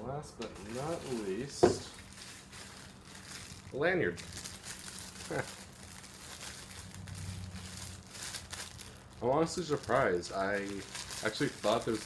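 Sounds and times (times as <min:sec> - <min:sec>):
plastic bag crinkling: 0:00.5 - 0:12.0.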